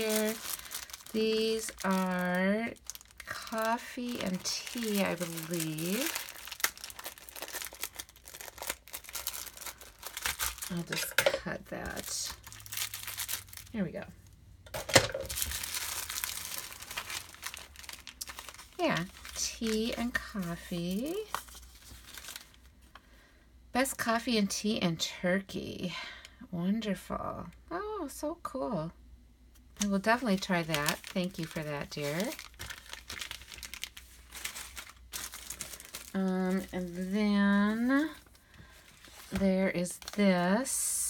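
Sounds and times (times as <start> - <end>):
plastic bag crinkling: 0.0 - 22.8, 29.8 - 40.8.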